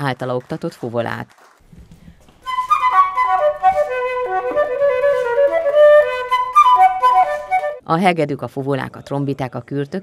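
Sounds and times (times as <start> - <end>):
flute melody: 2.4 - 7.8.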